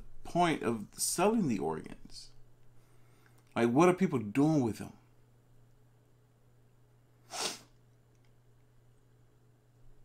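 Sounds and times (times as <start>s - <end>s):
man's sharp breath through nose: 7.2s - 7.7s.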